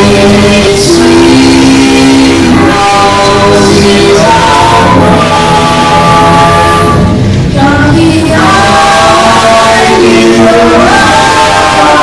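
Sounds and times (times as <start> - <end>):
close-harmony singing: 0.0 - 12.0.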